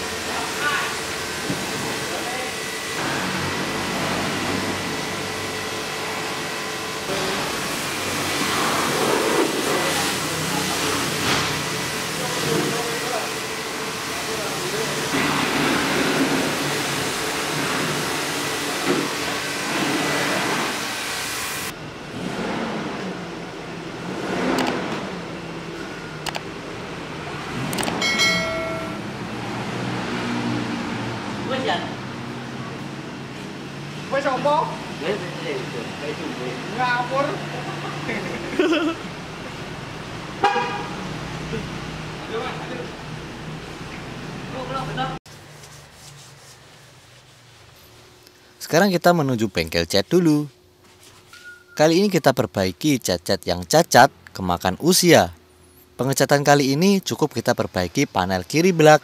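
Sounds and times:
pressure washer spraying car: 0.0 - 21.7
brief pitched tone: 28.0 - 29.2, 51.3 - 51.9.

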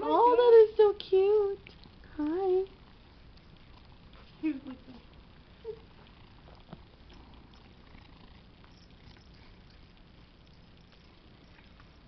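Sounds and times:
soft rustling: 1.6 - 12.0.

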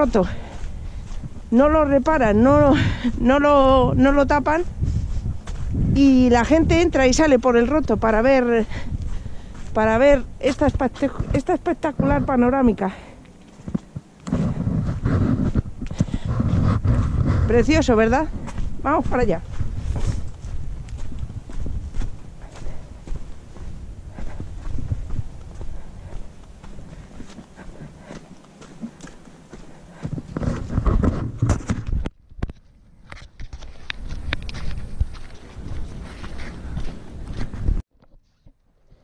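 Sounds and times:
footsteps on stony dirt path: 0.0 - 37.8.

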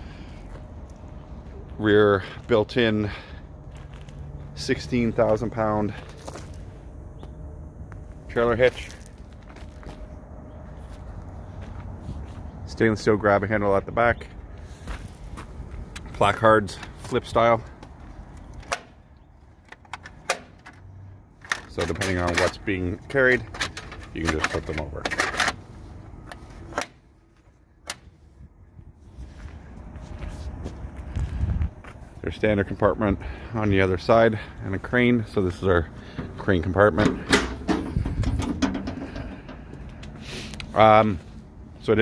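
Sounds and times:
metal door clicks and rattles: 36.9 - 39.6.

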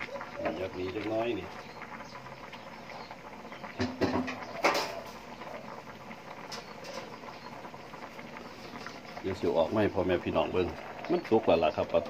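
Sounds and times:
pot boiling and bubbling: 0.0 - 12.0.

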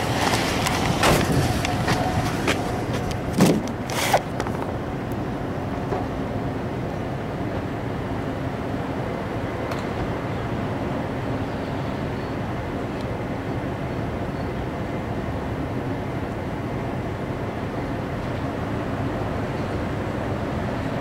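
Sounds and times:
vehicle engine hum: 0.0 - 21.0.

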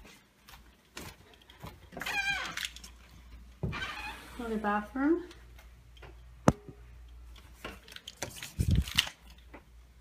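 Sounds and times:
door hinge squeaking: 3.6 - 4.2.

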